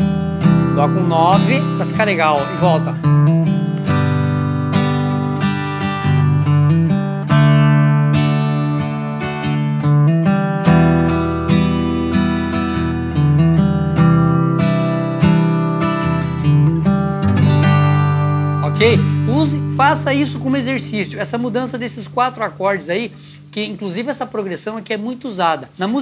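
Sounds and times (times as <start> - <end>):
acoustic guitar chords: 0.0 - 26.0.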